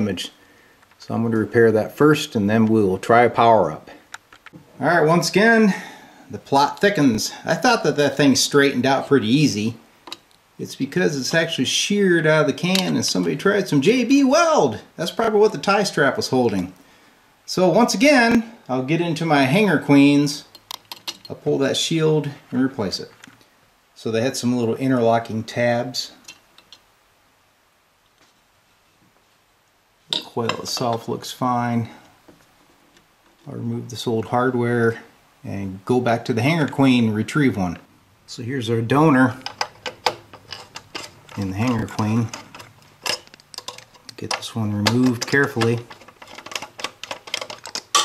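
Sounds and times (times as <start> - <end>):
screwdriver clicking on metal chassis: 39.4 - 48.0.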